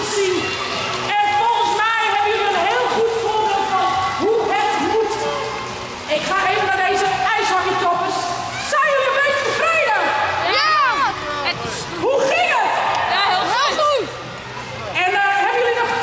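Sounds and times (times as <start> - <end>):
children shouting and chattering: 0.0 - 1.7, 8.1 - 15.0.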